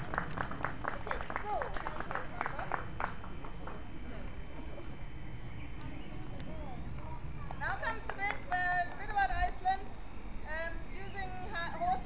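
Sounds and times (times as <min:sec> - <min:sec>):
low background rumble: 0:00.0 - 0:12.0
people talking: 0:00.8 - 0:02.9, 0:05.9 - 0:09.9, 0:10.5 - 0:12.0.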